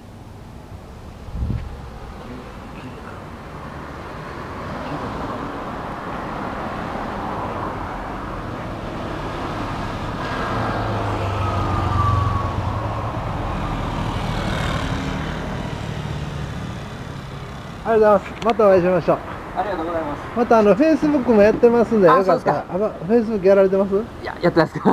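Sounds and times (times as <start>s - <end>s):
vehicle passing with whine: 0.7s - 24.2s.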